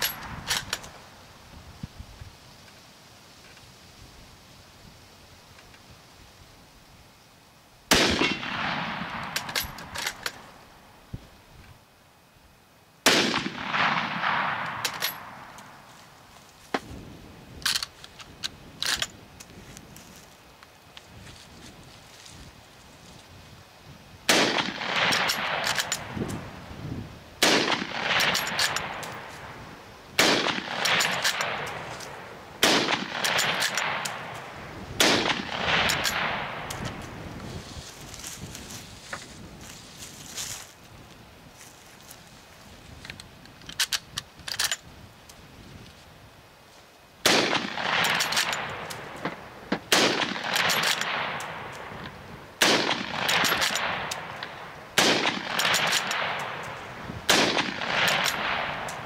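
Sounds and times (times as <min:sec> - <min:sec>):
rifle bolt clicks: 0:00.0 - 0:01.0, 0:09.2 - 0:10.4, 0:14.6 - 0:15.7, 0:25.1 - 0:26.4, 0:27.4 - 0:29.2, 0:30.2 - 0:37.0, 0:47.3 - 0:49.4, 0:50.0 - 0:59.0
rifle shots with long echo: 0:07.9 - 0:10.6, 0:13.0 - 0:16.2, 0:24.2 - 0:26.5, 0:27.4 - 0:37.2, 0:47.2 - 0:59.0.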